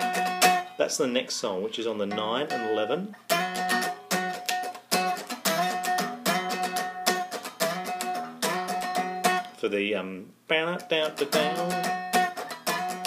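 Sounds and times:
electric guitar strummed chords: 0:00.0 - 0:00.8, 0:02.1 - 0:09.5, 0:11.0 - 0:13.0.

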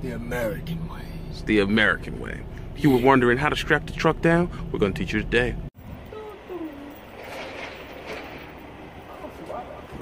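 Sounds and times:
low rumble with hiss: 0:00.0 - 0:10.0.

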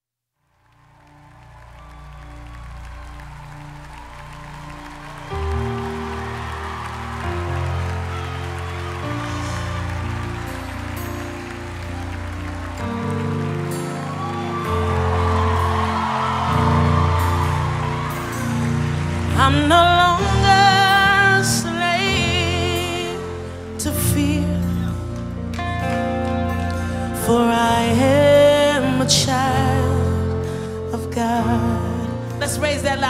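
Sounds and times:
band playing held chords: 0:00.9 - 0:28.0.

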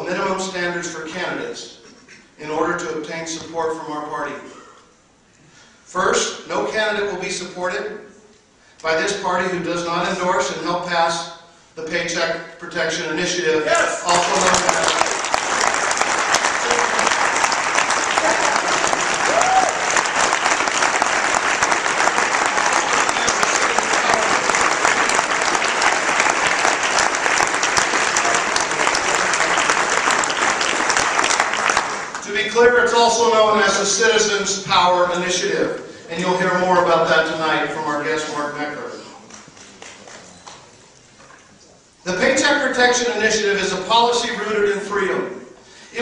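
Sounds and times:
audience applauding: 0:13.7 - 0:32.4, 0:39.2 - 0:40.8.

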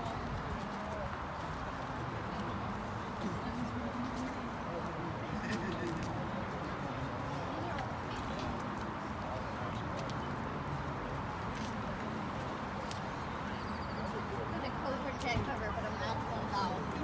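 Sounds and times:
people chattering: 0:00.0 - 0:17.0
steady background noise: 0:00.0 - 0:17.0.

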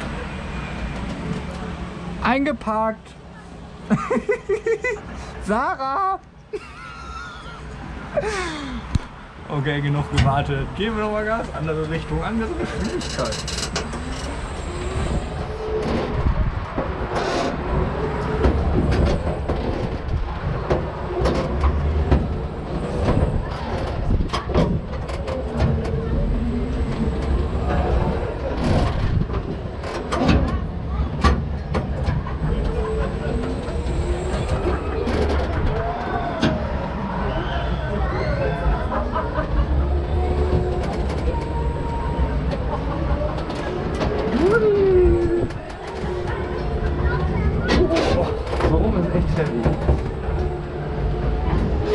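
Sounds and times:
swing ride low rumble: 0:00.0 - 0:51.9.

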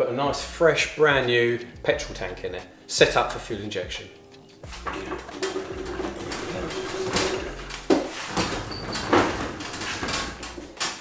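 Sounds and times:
steady squeak: 0:04.7 - 0:10.8
metal tank scraping and knocking: 0:04.7 - 0:11.0.

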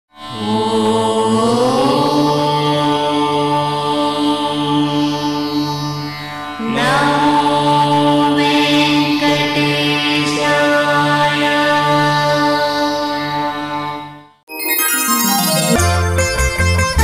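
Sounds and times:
sustained chanted tones: 0:00.3 - 0:13.8.

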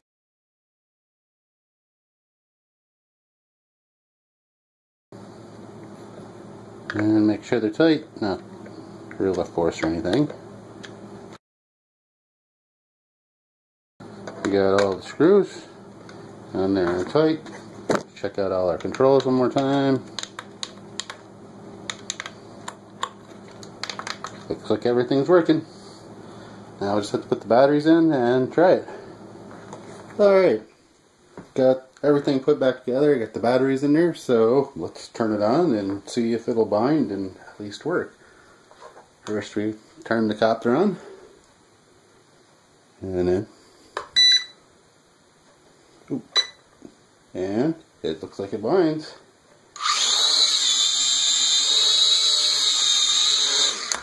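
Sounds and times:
radio controller plastic clicks: 0:21.9 - 0:24.5.

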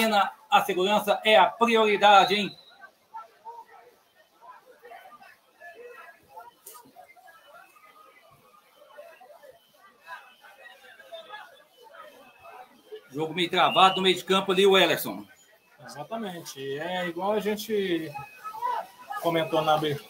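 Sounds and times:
distant calls and chatter: 0:00.0 - 0:20.0.

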